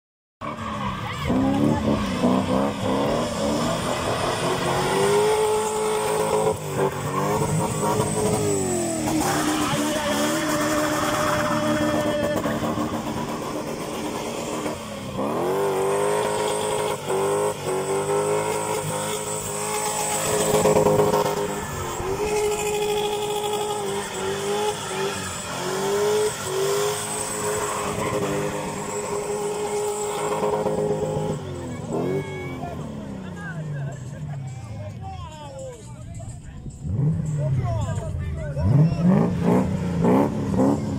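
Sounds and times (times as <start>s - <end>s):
spinning tyres: 0.4s - 35.0s
car engine revving hard: 1.1s - 33.4s, 38.6s - 40.9s.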